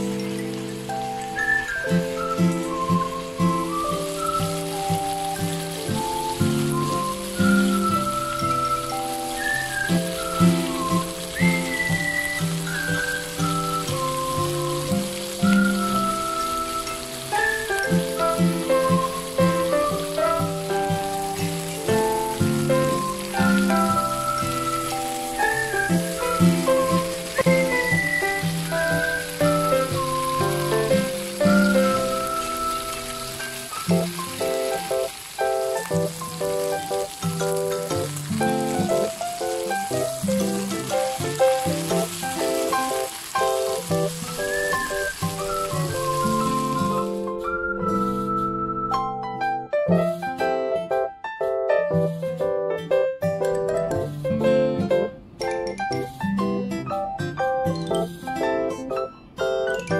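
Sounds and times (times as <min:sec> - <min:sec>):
food sizzling in a frying pan: 0:00.0 - 0:47.5
light piano music: 0:00.0 - 0:59.9.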